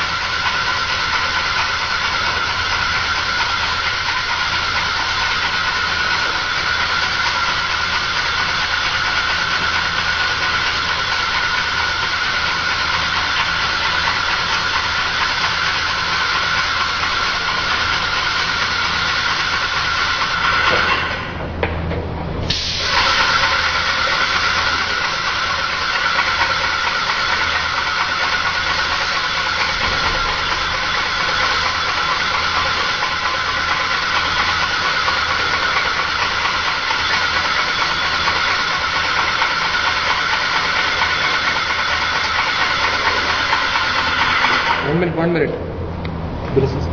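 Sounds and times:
paint sprayer hissing: 0:22.4 - 0:44.9.

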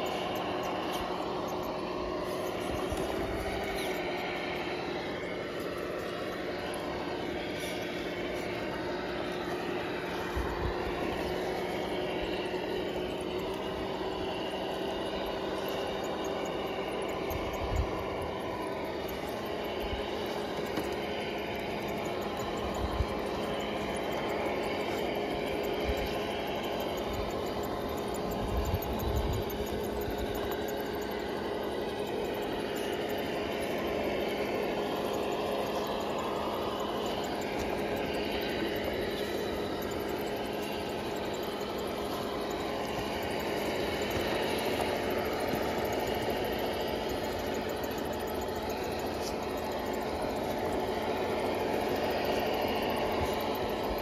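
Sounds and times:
electric motor whining: 0:00.0 - 0:54.0.

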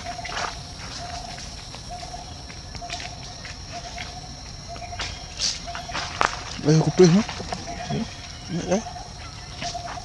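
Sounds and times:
steady high-pitched whine: 0:00.0 - 0:10.0.

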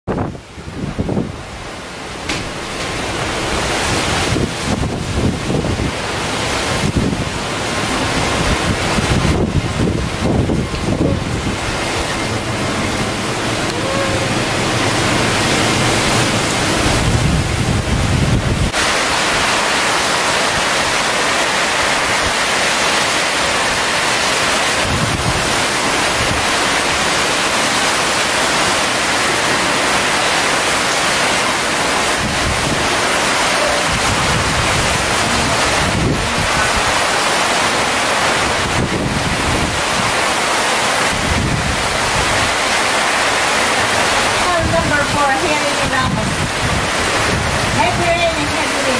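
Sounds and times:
heavy rain: 0:00.1 - 0:48.9
strong wind: 0:00.1 - 0:48.9
wind gusts hitting microphone: 0:00.1 - 0:48.9.

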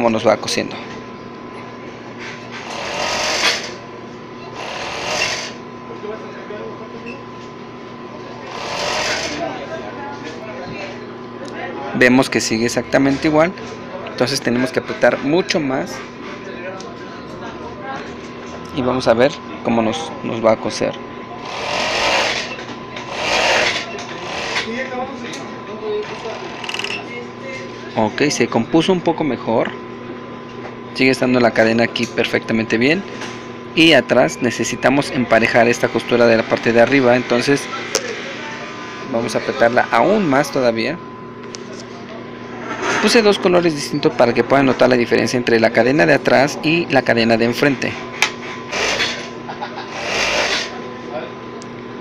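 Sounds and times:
machine humming: 0:00.0 - 0:14.9, 0:17.0 - 0:52.0
sewing machine motor hum: 0:02.6 - 0:03.8, 0:04.5 - 0:05.6, 0:08.4 - 0:09.5, 0:21.4 - 0:24.8, 0:26.0 - 0:27.0, 0:48.7 - 0:49.3, 0:49.9 - 0:50.8
overlock sewing machine stitching: 0:08.5 - 0:09.4, 0:21.4 - 0:22.5, 0:23.1 - 0:24.7, 0:49.9 - 0:50.7.

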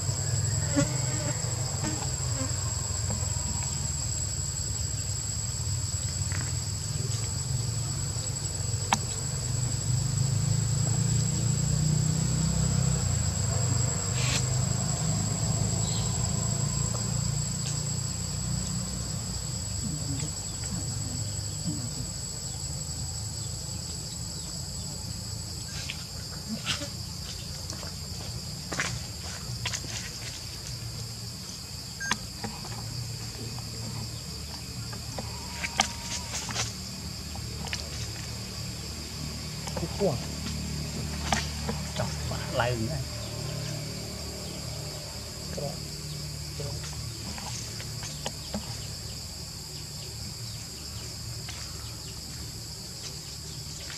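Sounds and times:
high-pitched insect drone: 0:00.0 - 0:53.9.

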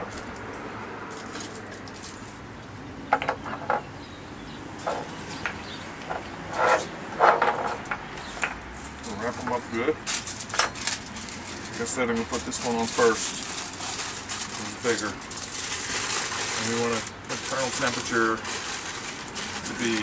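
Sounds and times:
aluminium foil crinkling: 0:01.1 - 0:02.4, 0:09.0 - 0:20.0.

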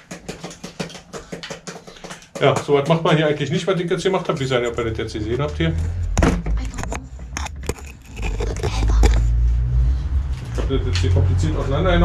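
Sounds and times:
steady low rumble: 0:04.5 - 0:12.0
bicycle wheel clicks and scrapes: 0:06.8 - 0:09.4.

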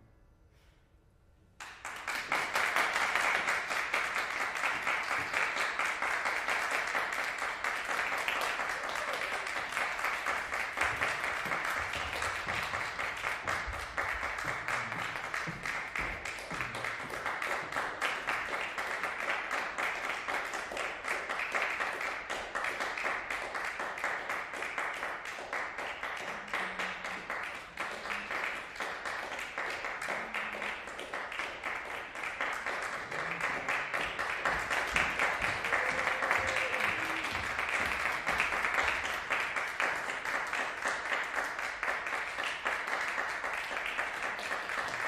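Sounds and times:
audience applauding: 0:01.6 - 0:45.0.

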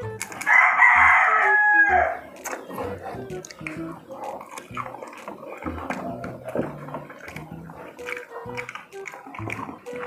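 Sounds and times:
rooster crowing: 0:00.4 - 0:02.2.

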